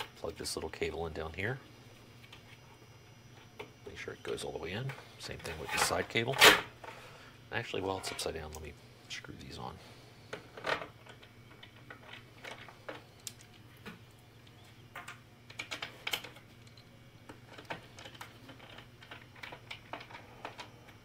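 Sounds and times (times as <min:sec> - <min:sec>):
small parts clicking and tapping: 0:10.3 - 0:21.0.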